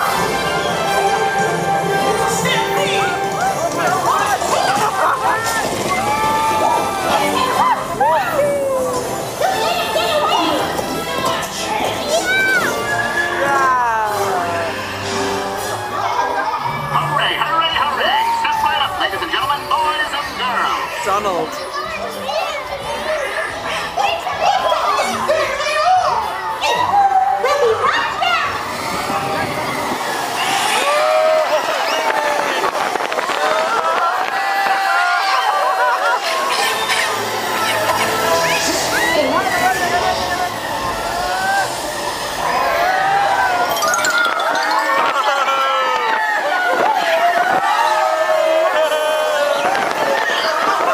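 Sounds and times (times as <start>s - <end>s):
cartoon music: 43.7s - 45.8s.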